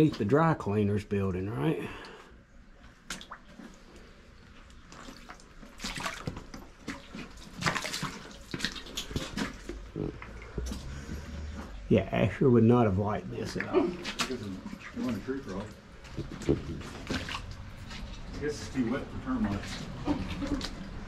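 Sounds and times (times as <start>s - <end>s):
boots wading through water: 2.8s - 11.8s, 13.4s - 21.0s.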